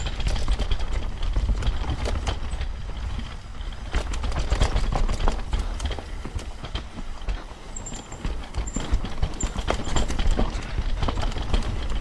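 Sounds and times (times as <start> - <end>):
bike rattling and knocking: 0.0 - 12.0
rumble of tyres and air: 0.0 - 12.0.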